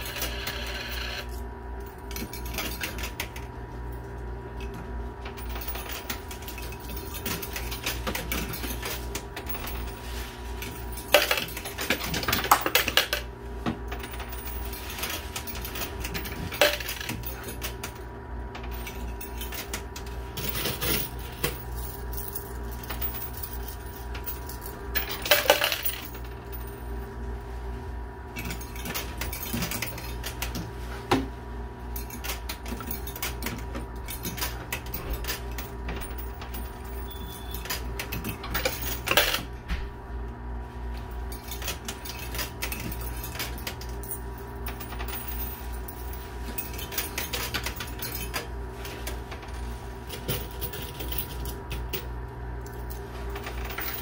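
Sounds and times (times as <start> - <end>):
coins clinking on metal: 0.0 - 1.4, 5.4 - 13.3, 13.9 - 18.0, 18.7 - 27.0, 32.0 - 39.6, 41.3 - 52.1, 52.7 - 54.0
steady low hum: 0.0 - 54.0.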